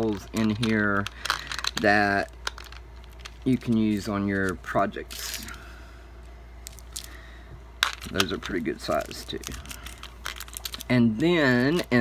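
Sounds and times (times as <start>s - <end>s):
plastic pieces clicking: 0.0s - 4.5s.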